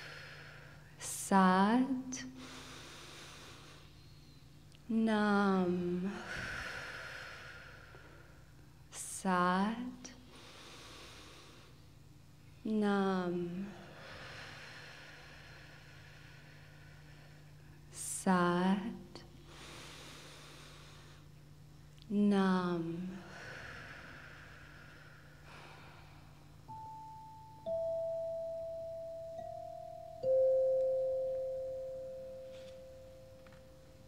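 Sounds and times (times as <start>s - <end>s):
soft hiss: 0.0s - 34.0s
faint low drone: 22.3s - 34.0s
higher tuning fork ringing: 26.6s - 34.0s
lower tuning fork ringing: 26.6s - 34.0s.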